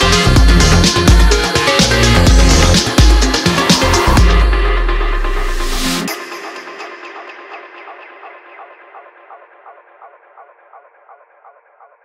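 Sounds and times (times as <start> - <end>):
repeating electronic pulse: 0.0 - 11.5
breakbeat and bass: 0.0 - 12.0.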